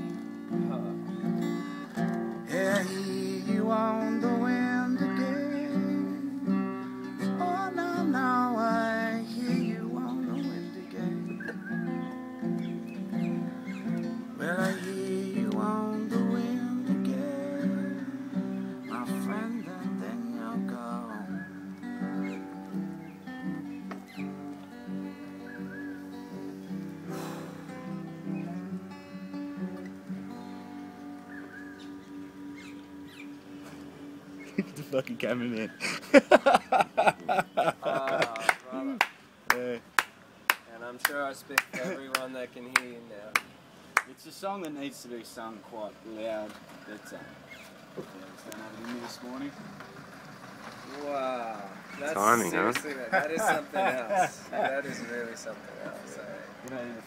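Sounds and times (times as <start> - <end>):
acoustic guitar chords: 0.0 - 38.0, 51.7 - 57.0.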